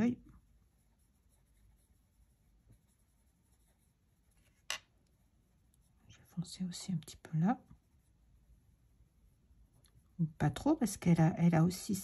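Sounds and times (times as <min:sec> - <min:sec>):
pencil shading on paper: 0:00.6 - 0:04.6.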